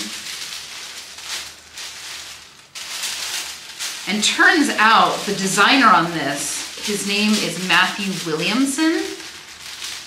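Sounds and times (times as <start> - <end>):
tissue paper and fabric rustling: 0.0 - 10.0.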